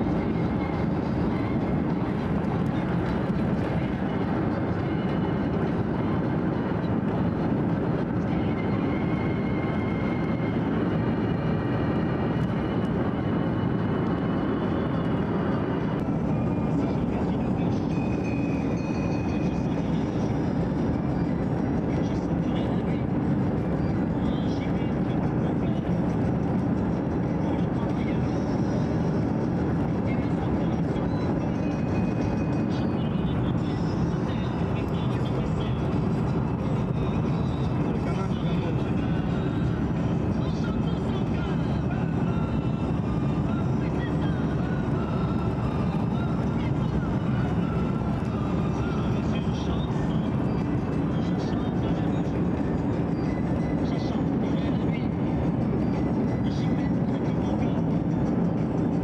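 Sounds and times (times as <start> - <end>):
car road and engine noise: 0.0 - 59.0.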